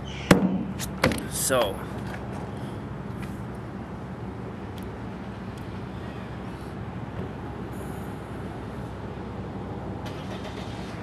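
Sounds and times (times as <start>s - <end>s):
vehicle engine idling: 1.2s - 11.0s.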